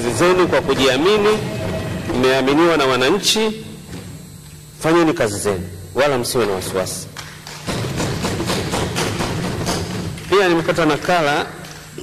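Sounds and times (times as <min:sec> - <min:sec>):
hands thumping wooden desks: 0:07.7 - 0:10.3.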